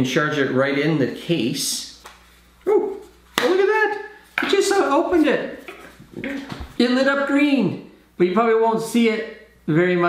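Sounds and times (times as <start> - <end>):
man exclaiming: 2.6 - 5.0.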